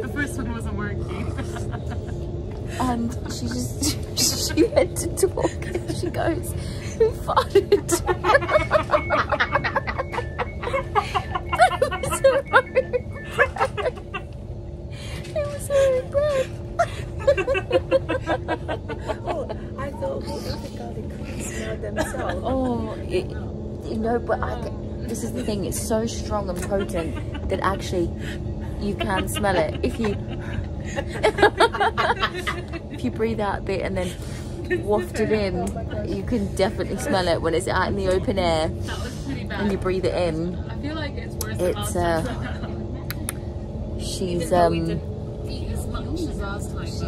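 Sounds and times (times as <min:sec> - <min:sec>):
train rumbling: 0:00.0 - 0:47.0
woman laughing: 0:01.0 - 0:14.4, 0:15.3 - 0:23.2, 0:25.2 - 0:33.2, 0:34.7 - 0:37.4, 0:41.5 - 0:42.8
woman laughing hard: 0:06.9 - 0:14.4, 0:15.9 - 0:19.8, 0:28.8 - 0:33.0.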